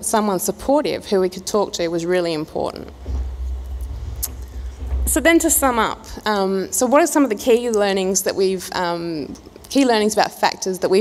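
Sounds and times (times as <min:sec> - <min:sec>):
steady low rumble: 0:02.9 - 0:07.0.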